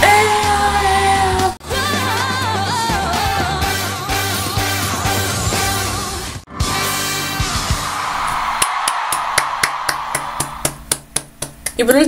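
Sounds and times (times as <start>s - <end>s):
audience cheering: 6.9s - 10.9s
hand claps: 8.6s - 12.0s.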